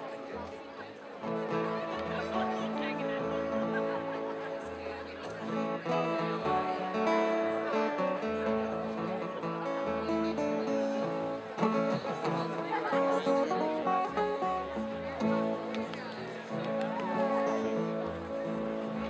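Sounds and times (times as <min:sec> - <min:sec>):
strummed acoustic guitars: 0:01.2 - 0:19.0
fiddles: 0:01.4 - 0:19.0.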